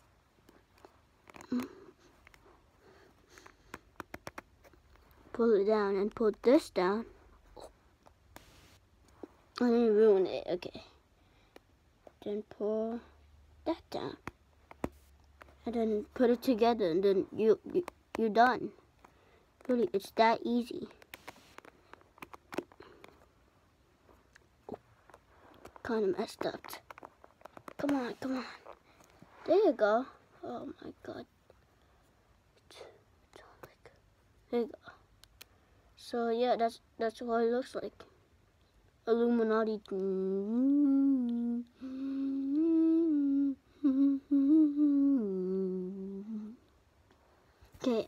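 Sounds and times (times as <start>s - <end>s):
wooden sticks clicking and tapping: 3.7s - 4.5s
boy humming a slow tune: 40.0s - 46.7s.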